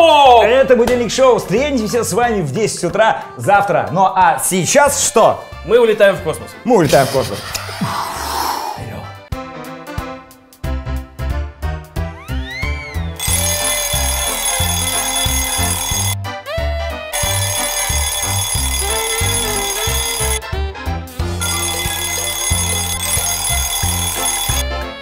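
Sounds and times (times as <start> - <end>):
alarm clock bell ringing: 13.2 - 16.2, 17.2 - 20.4, 21.4 - 24.7
upbeat theme jingle: 13.2 - 16.2, 17.2 - 20.5, 21.3 - 25.0.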